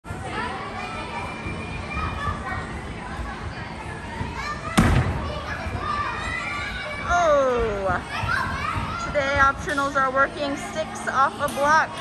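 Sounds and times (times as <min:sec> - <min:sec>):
children chattering and calling out: 0:00.1 - 0:12.0.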